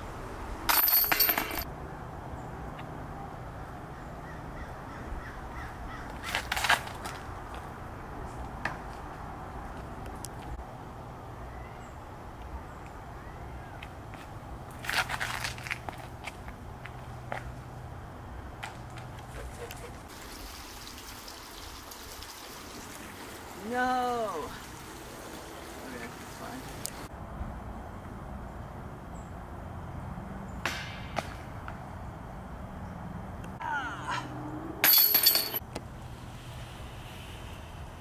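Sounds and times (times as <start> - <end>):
soft hiss: 35.8 - 38.0.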